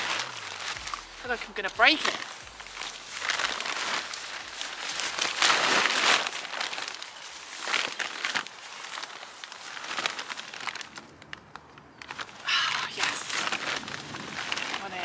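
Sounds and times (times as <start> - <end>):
tent fabric rustling and crinkling: 0.0 - 15.0.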